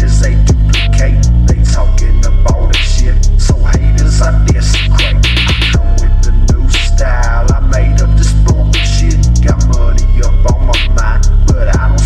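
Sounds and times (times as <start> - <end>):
deep bass notes: 0.0 - 12.0
fast hi-hats: 0.0 - 12.0.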